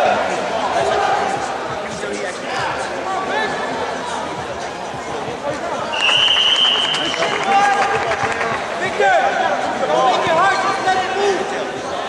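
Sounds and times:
crowd chatter: 0.0s - 12.0s
referee's whistle blast: 5.9s - 7.5s.

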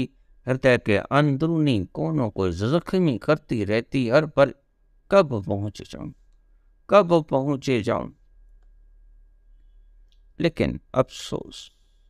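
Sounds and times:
man speaking: 0.0s - 6.2s, 6.9s - 8.2s, 10.4s - 11.8s
low electrical hum: 0.0s - 12.0s
faint click: 8.5s - 8.8s.

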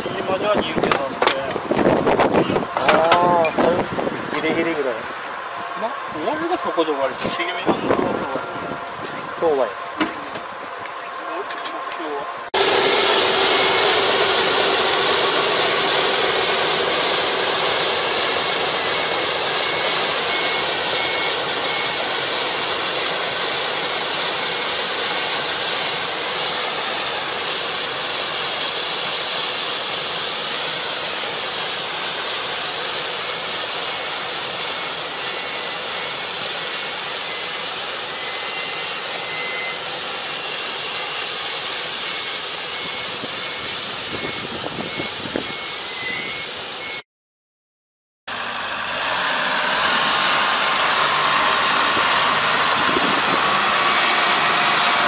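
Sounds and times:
combine harvester running: 0.0s - 47.0s, 48.3s - 55.0s.

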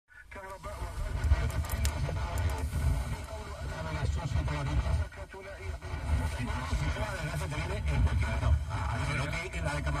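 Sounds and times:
radio voice talking with heavy bass: 0.1s - 10.0s.

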